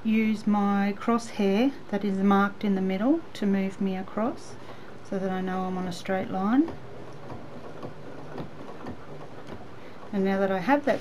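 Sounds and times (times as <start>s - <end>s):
sewing machine humming: 4.3s - 11.0s.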